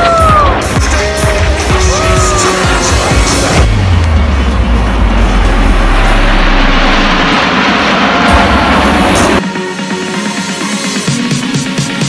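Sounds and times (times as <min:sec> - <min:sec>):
jet aircraft flying past: 0:03.3 - 0:09.4.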